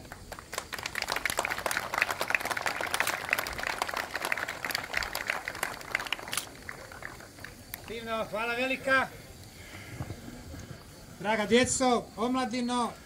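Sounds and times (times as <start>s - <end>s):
crowd applauding: 0.0s - 8.1s.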